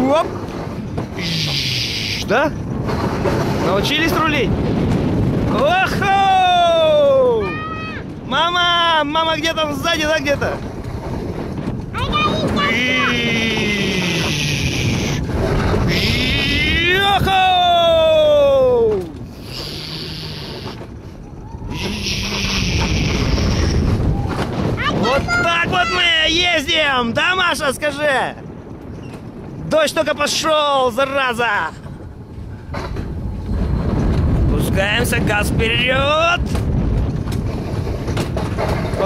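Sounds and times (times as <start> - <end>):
coaster sled wheels rumbling on rails: 0.0 - 39.0
wind on microphone: 0.0 - 39.0.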